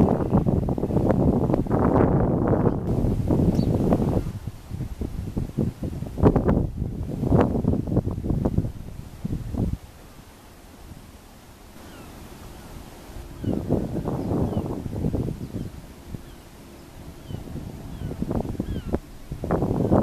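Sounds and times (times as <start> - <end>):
wind buffeting microphone: 0.0 - 11.2, 11.8 - 20.0.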